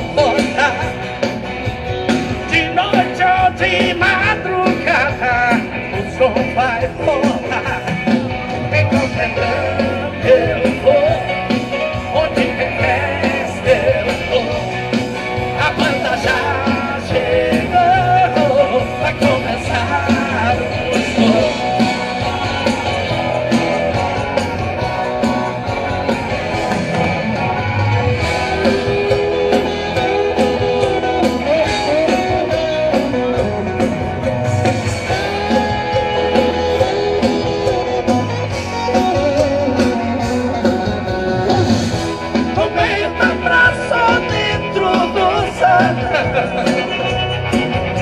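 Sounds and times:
live band playing instrumental: 0.0s - 48.0s.

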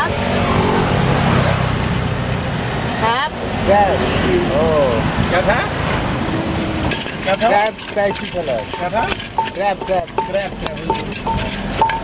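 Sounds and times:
vehicle passing: 0.0s - 9.2s.

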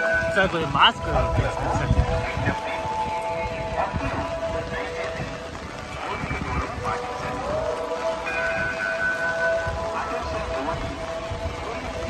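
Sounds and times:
music with long held notes: 0.0s - 12.0s
rough background noise: 0.0s - 12.0s.

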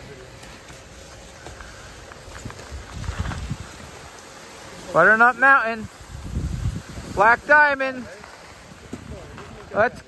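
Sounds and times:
skis scraping on snow: 0.0s - 10.0s
wind rumble on microphone: 2.2s - 4.2s, 5.8s - 7.6s.

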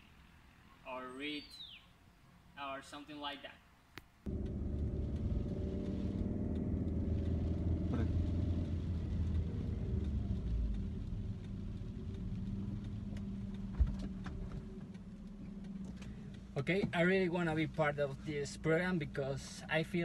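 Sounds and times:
car engine and road hum: 4.1s - 20.0s.

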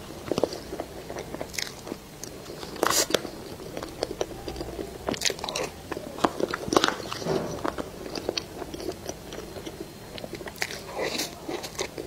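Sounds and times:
chewing and crunching food: 0.0s - 12.0s.

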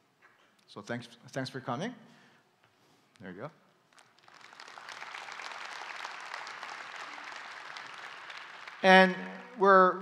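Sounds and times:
audience applauding: 3.9s - 9.8s.

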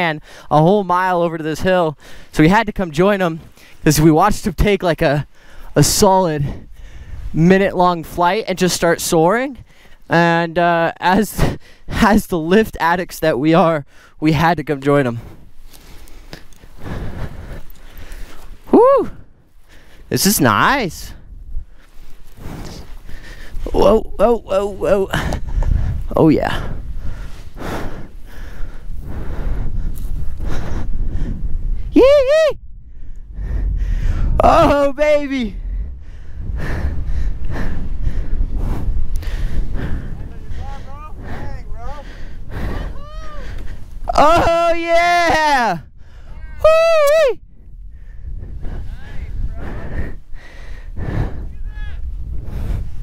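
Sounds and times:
wind rustling: 0.0s - 53.0s
person exclaiming: 18.7s - 19.2s, 23.7s - 25.2s, 31.9s - 32.6s, 34.4s - 35.3s, 42.9s - 43.5s, 44.1s - 47.4s, 51.6s - 52.0s
footsteps on dry ground: 21.6s - 23.8s.

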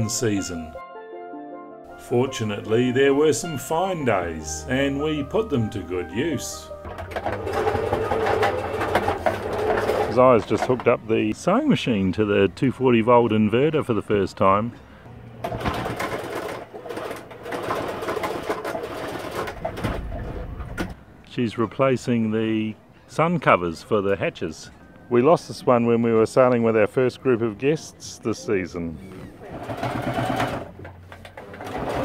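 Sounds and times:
sewing machine stitching: 6.9s - 10.4s, 15.4s - 20.4s, 29.4s - 32.0s.

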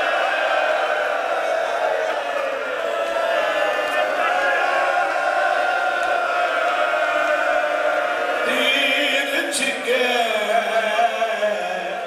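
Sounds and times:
man chanting: 8.4s - 12.0s.

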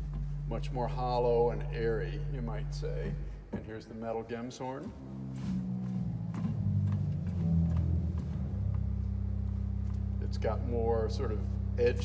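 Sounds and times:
pipe organ bass notes: 0.0s - 12.0s.

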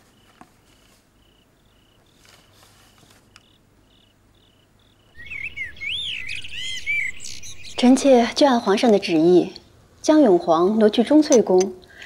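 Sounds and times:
faint insect-like chirps: 0.0s - 8.9s
bird whistling: 5.2s - 8.4s.

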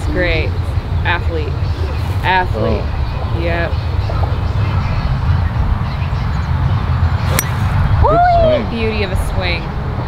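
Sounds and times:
golf club striking ball: 7.2s - 7.8s
person exclaiming: 8.0s - 8.7s.

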